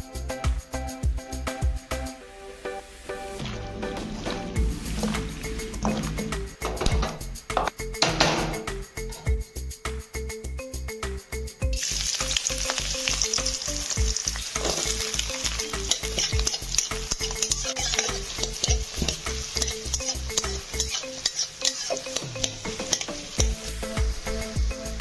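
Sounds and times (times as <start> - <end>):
food sizzling in hot oil: 11.7 - 25.0
metal spatula scraping pan: 14.5 - 23.4.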